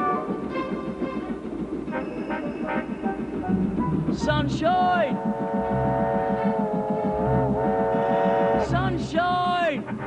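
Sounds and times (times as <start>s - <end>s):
low rhythmic throb: 0.0s - 10.0s
tugboat chime whistle: 1.9s - 3.1s.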